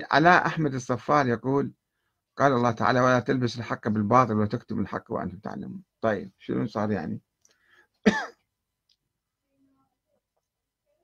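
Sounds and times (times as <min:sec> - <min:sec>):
man clearing throat: 0:08.0 - 0:08.5.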